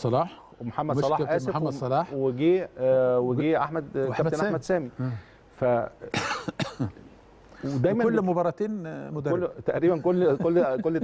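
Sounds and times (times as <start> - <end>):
short cough: 6.1 - 7.0.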